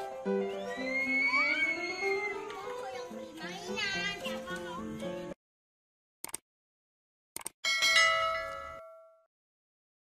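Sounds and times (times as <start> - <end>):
bright bell chime: 7.7 - 9.3.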